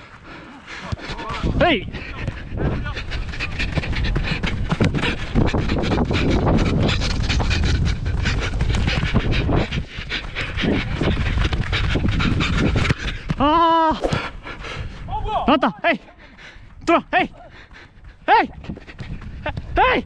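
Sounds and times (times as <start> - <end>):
heavy breathing: 0.0 - 13.3, 14.0 - 15.1, 16.0 - 16.8, 17.4 - 19.3
wind rumble on microphone: 0.9 - 15.6, 16.4 - 20.0
footfalls on artificial turf: 14.0 - 14.4.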